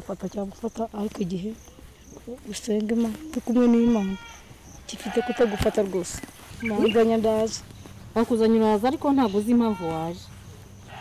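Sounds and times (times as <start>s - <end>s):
person speaking: 0.0s - 10.8s.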